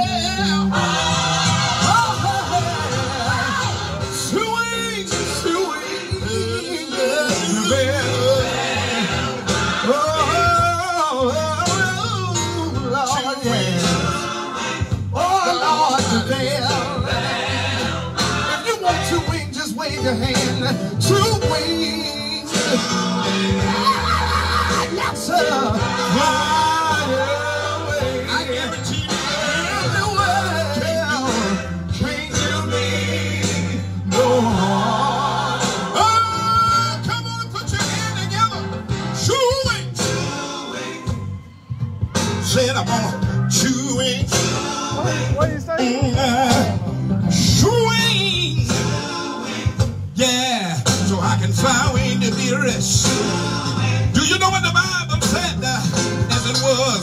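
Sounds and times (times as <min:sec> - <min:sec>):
bass line: 0:00.0 - 0:57.0
gospel band music: 0:00.0 - 0:57.0
guitar: 0:00.0 - 0:57.0
person singing: 0:01.8 - 0:38.6.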